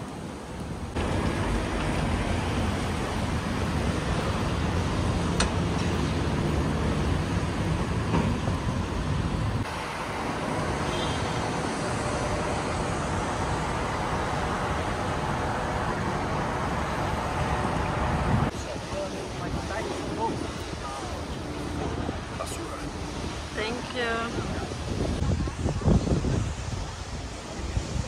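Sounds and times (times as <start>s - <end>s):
passing cars traffic noise: 0.0s - 28.0s.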